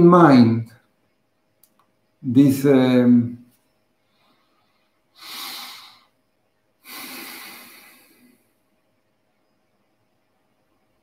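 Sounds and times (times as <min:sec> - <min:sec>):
man breathing: 0:04.0 - 0:08.6.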